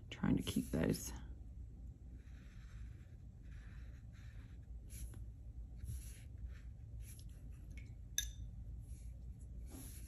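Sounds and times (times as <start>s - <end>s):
brush scratching on paper: 2.1s - 7.6s, 8.8s - 10.0s.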